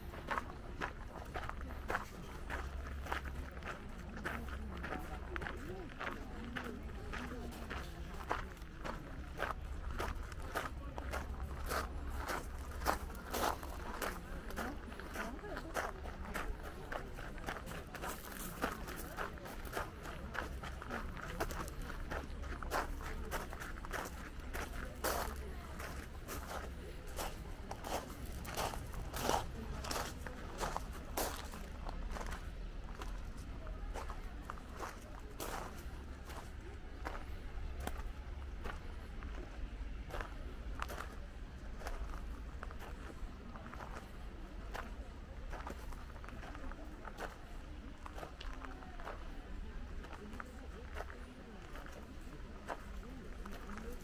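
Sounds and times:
footsteps on gravel: 0.1 - 54.0.

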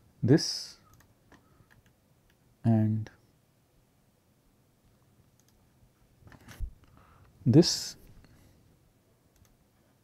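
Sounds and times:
keyboard and mouse clicks: 0.9 - 2.4, 5.3 - 5.6, 9.3 - 9.6.

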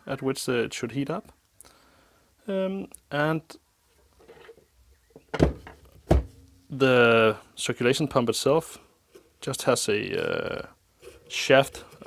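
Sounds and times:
dull thunk on wooden bench: 5.2 - 6.4.

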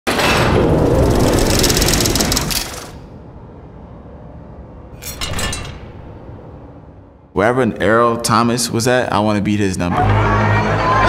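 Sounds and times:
rapid metallic clicks: 0.1 - 3.0
grinding metallic rush: 0.1 - 3.3
low rumble: 0.2 - 8.2.

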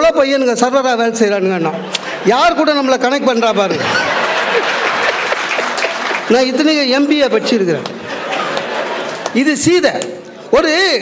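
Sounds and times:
audience applause: 3.9 - 7.1, 8.0 - 9.4.

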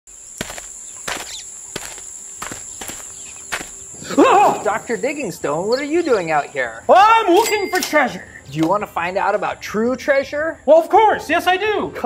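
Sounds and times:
footsteps on stage floor: 0.4 - 3.8.

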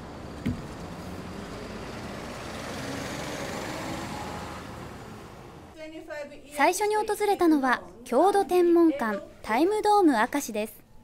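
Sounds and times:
tour coach driving past: 0.0 - 5.8.

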